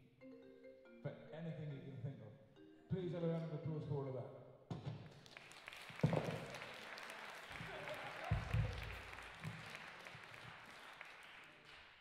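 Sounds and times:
audience applause: 5.1s - 12.0s.

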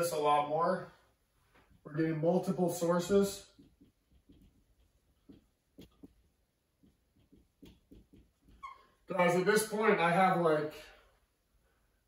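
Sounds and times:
marker writing on whiteboard: 1.7s - 9.1s
marker squeak: 7.3s - 9.1s.

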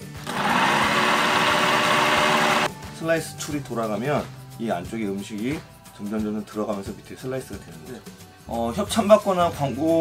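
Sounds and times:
hand blender motor whirring: 0.2s - 2.7s.

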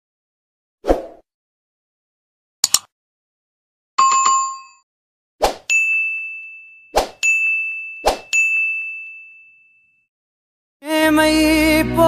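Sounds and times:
notification bell ding: 4.0s - 4.8s, 5.7s - 10.0s
high ringing chime: 5.7s - 10.0s.

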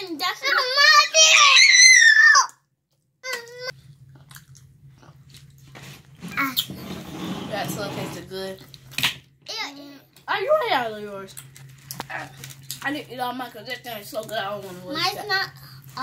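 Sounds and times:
eating and utensil noises: 3.2s - 9.1s, 11.2s - 16.0s.

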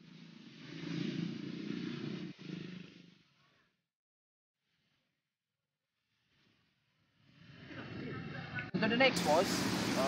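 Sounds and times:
vehicle engine passing by: 0.0s - 3.8s, 6.1s - 10.0s.

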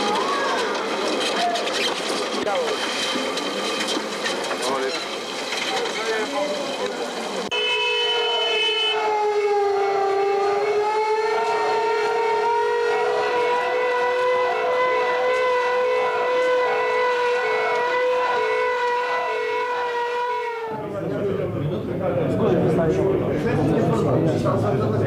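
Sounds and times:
siren steady tone: 7.5s - 20.8s.

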